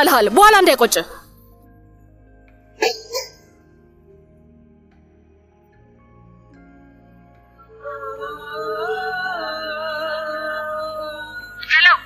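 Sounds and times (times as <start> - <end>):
soft background music: 0.0 - 12.0.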